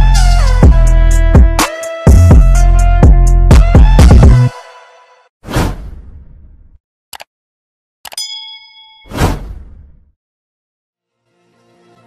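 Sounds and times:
bell-like ding: 0:08.2 - 0:09.2.

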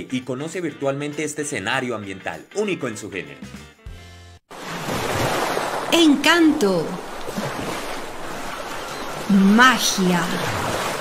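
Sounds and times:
ocean waves and surf: 0:04.5 - 0:11.0.

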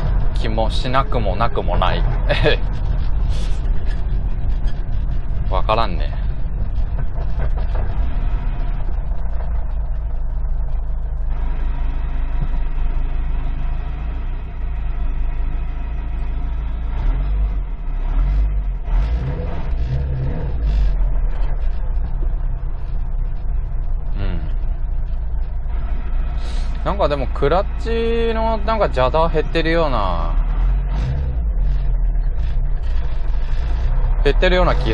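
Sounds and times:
car engine: 0:00.0 - 0:34.9
road noise inside car: 0:00.0 - 0:34.9.

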